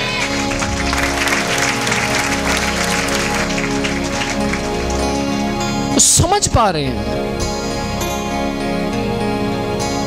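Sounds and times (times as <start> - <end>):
congregation clapping: 0.0 - 5.9
music with held chords: 0.0 - 10.0.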